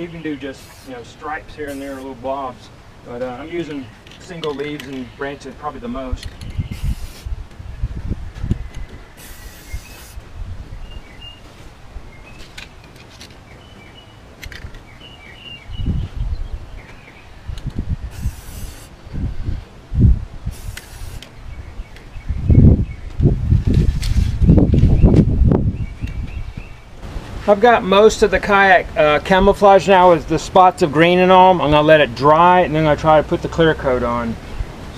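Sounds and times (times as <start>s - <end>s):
birds chirping: 0.0s - 19.8s, 20.5s - 34.9s
aerosol spray paint hissing: 0.5s - 2.1s, 6.6s - 7.3s, 9.2s - 10.2s, 18.1s - 19.0s, 20.5s - 21.3s
wind buffeting microphone: 2.6s - 27.4s.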